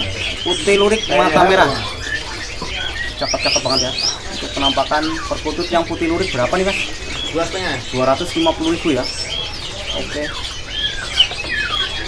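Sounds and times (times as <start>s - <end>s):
caged birds chirping: 0.0s - 12.0s
whistled bird calls: 0.0s - 12.0s
man speaking: 0.4s - 2.0s.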